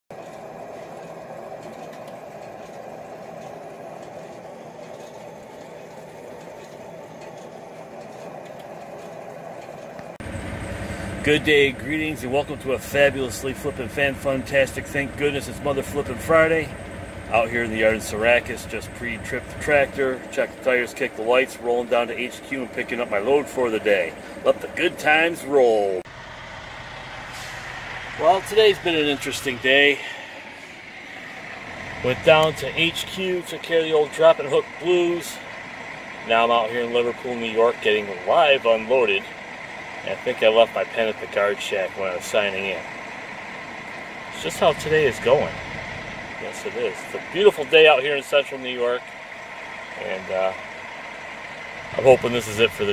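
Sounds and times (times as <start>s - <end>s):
fuel pump whirring: 0.1s - 52.9s
truck diesel engine running: 0.1s - 52.9s.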